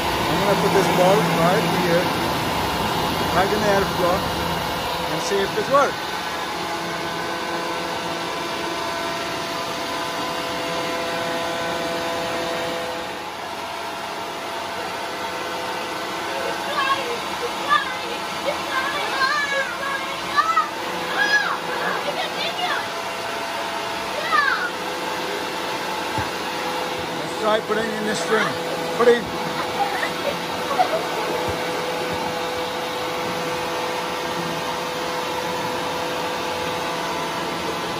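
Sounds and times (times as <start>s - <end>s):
electric air blower whining hum: 0.0s - 37.9s
child's voice: 16.6s - 22.9s, 24.1s - 24.7s.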